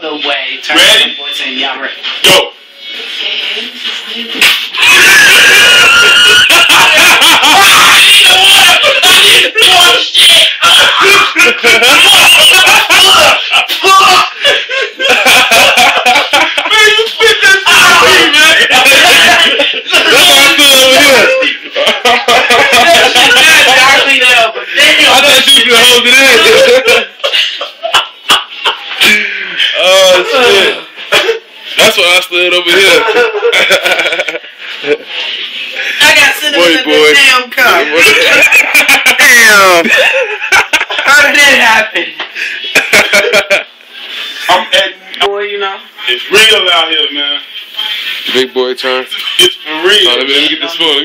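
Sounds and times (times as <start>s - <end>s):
voices crying out: 4.4s - 15.6s, 16.6s - 21.7s
distorted laughter and shrieking: 4.4s - 31.6s.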